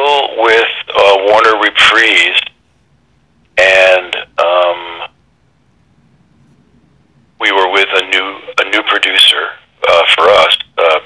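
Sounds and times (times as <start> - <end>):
person speaking over telephone: 0.0 - 2.6, 3.6 - 5.1, 7.4 - 11.0.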